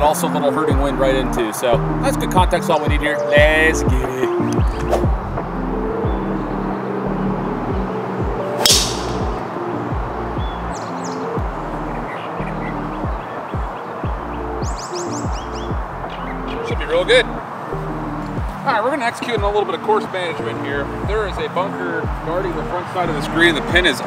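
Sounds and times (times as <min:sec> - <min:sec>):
background music with beat: 0:01.8 - 0:06.7, 0:07.5 - 0:19.8, 0:20.8 - 0:21.4, 0:22.0 - 0:24.0
golf club striking ball: 0:08.6 - 0:09.4.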